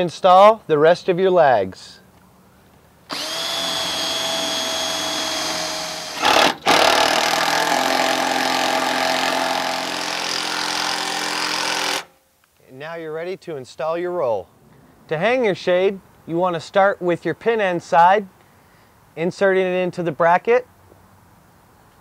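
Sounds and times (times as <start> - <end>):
power drill drilling: 3.1 - 12.1.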